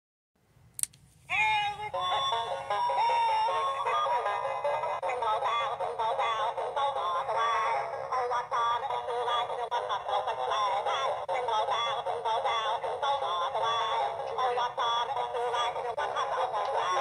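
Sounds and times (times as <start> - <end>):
toy singing through small speaker: 1.3 - 17.0.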